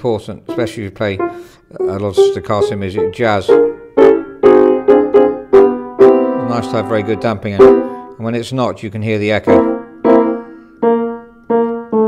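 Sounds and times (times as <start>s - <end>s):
piano note ringing: 0.5s - 8.2s, 9.4s - 12.0s.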